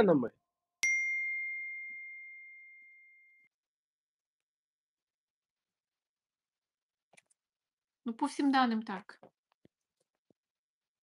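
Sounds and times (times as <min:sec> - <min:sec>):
bell ding: 0:00.8 - 0:03.5.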